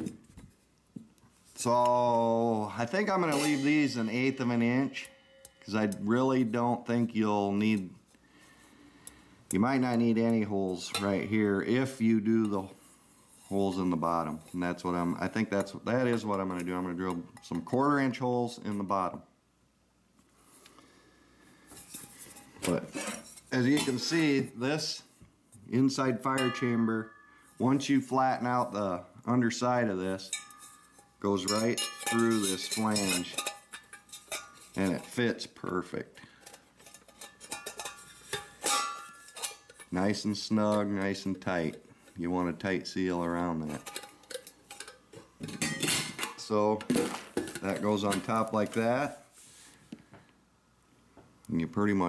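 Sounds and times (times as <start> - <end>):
rubbing and handling metal pot: 0.0 - 8.8, 9.5 - 19.1, 21.6 - 49.8
metal on metal clatter: 1.7 - 6.9, 9.8 - 12.7, 21.7 - 24.6, 25.9 - 28.8, 30.0 - 35.4, 36.4 - 41.8, 43.2 - 49.2
metal stove parts clicking: 30.2 - 35.2, 36.4 - 40.0, 43.7 - 48.9.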